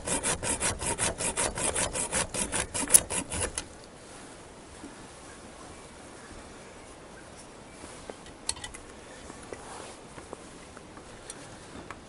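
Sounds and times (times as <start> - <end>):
hacksaw scraping on metal: 0.0 - 3.7.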